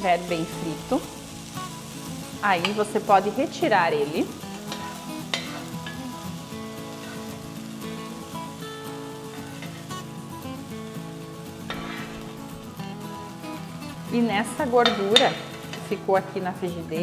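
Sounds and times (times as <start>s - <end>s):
bacon sizzling in frying pan: 0.0s - 16.9s
spoon scraping and clicking on pan: 4.7s - 6.0s, 11.7s - 12.3s.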